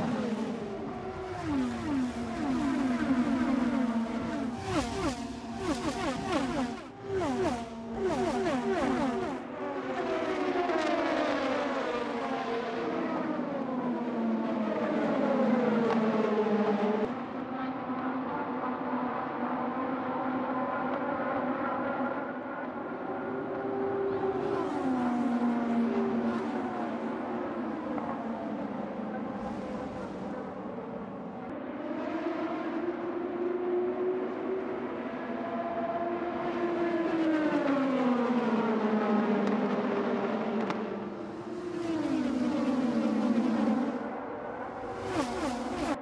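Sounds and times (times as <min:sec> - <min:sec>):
race car engines passing: 0:00.0 - 0:46.0.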